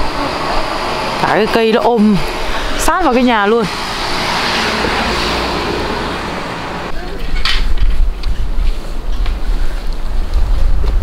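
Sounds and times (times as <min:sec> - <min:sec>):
van driving past: 0:00.0 - 0:07.0
wind buffeting microphone: 0:00.0 - 0:11.0.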